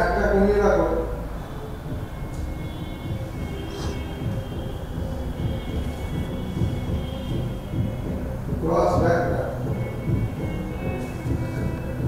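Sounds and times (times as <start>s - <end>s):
faint steady high tones: 0.0s - 12.0s
low rumbling drone: 0.0s - 12.0s.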